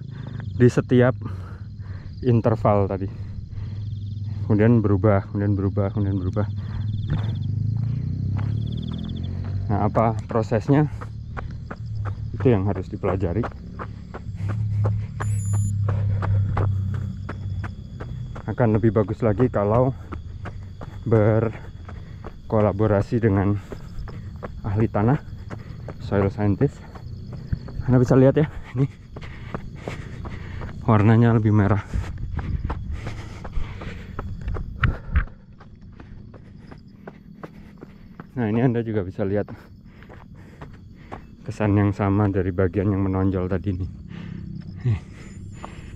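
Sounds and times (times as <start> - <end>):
running footsteps on dirt: 0.0 - 45.9
steady low hum: 0.0 - 45.9
high-pitched beep: 15.2 - 15.8.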